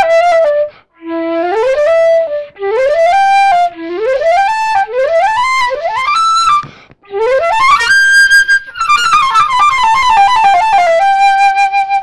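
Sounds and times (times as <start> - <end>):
solo flute melody: 0.0 - 12.0.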